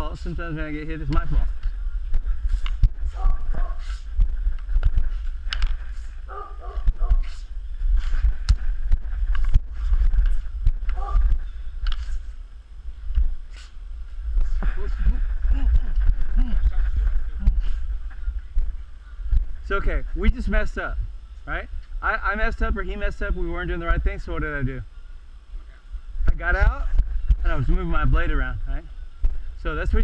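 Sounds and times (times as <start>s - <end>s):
low rumble: 0.0s - 30.0s.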